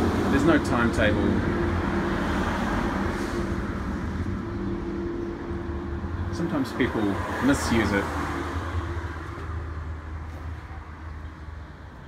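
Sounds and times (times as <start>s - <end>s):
road traffic hum: 0.0s - 12.0s
vehicles passing: 0.0s - 12.0s.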